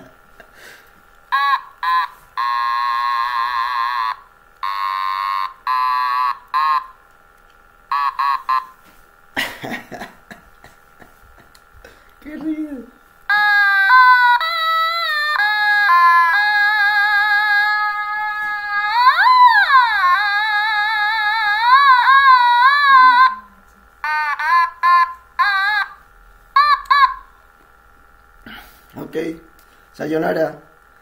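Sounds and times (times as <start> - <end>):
electronic instrument notes: 1.3 - 7.1, 7.9 - 8.9, 13.3 - 28.2.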